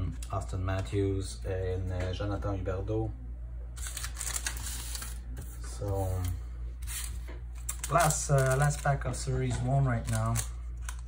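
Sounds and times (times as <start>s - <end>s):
steady low hum: 0.0s - 11.0s
wrapper rustling and clicks: 3.8s - 5.2s, 6.9s - 11.0s.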